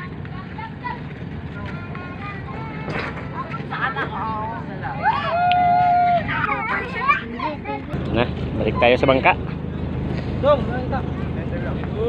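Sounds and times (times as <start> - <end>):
low engine hum: 0.0 - 12.0
people talking and calling out: 0.0 - 12.0.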